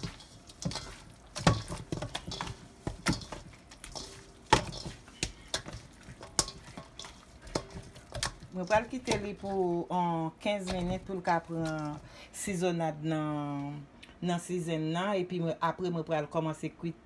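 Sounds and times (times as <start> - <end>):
meat knocking in metal bowl: 0.0 - 9.8.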